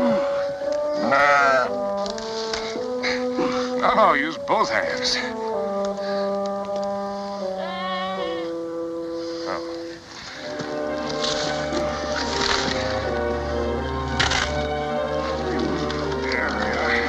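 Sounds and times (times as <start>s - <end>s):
dry branches crackling: 0.0s - 7.5s, 9.2s - 17.0s
orchestral film score: 0.0s - 17.0s
sheep bleat: 1.0s - 1.7s, 7.5s - 8.6s, 15.4s - 17.0s.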